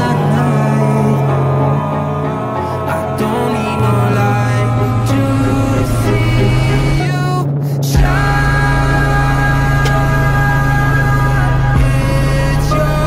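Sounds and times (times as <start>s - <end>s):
pop music with steady bass: 0.0s - 13.0s.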